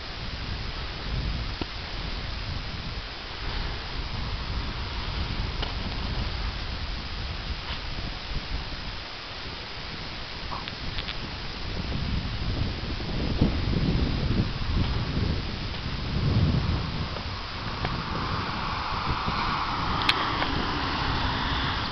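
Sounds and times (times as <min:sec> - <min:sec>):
steady hiss: 0:00.0 - 0:21.9
wind buffeting microphone: 0:00.0 - 0:21.9.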